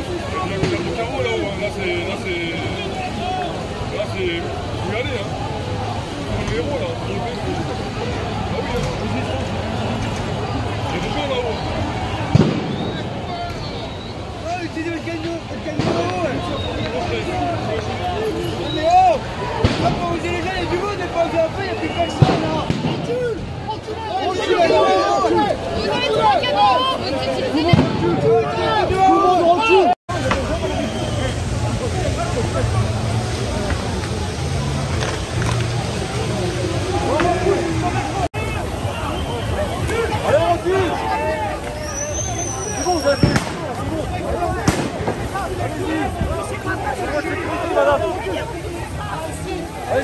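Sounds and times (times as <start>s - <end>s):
crowd chatter: 0.0s - 50.0s
people talking and calling out: 0.0s - 50.0s
firework whistle: 11.5s - 14.5s, 30.2s - 31.8s, 41.6s - 43.7s
firework bangs: 12.2s - 13.7s, 15.2s - 16.9s, 19.6s - 20.5s, 22.1s - 23.3s, 27.7s - 28.3s, 30.1s - 36.0s, 42.9s - 45.8s.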